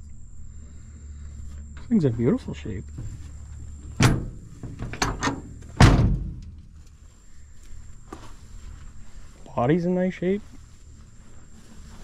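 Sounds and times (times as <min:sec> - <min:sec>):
steel truck door slamming: 0:03.9 - 0:06.6.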